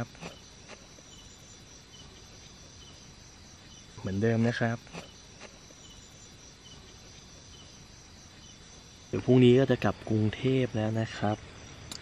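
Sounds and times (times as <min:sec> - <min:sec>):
high cricket chirps: 0:00.0 - 0:12.0
insects droning: 0:00.0 - 0:12.0.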